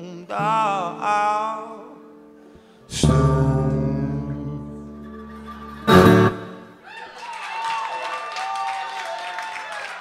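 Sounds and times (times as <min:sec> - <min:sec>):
slide guitar chords: 0:00.2 - 0:06.8.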